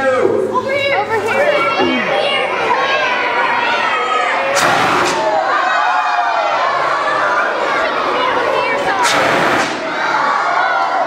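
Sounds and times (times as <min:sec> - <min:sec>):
children shouting and cheering: 0:01.1 - 0:04.6, 0:05.3 - 0:09.0, 0:09.8 - 0:11.0.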